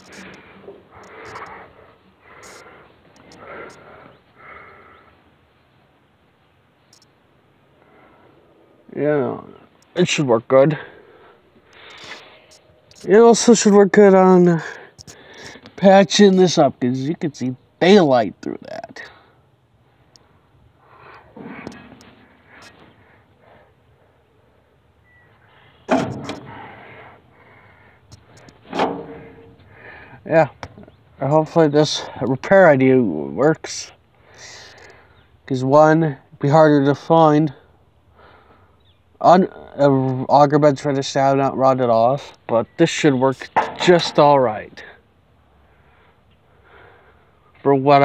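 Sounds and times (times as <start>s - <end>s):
faint background hiss: 0.0s - 48.0s.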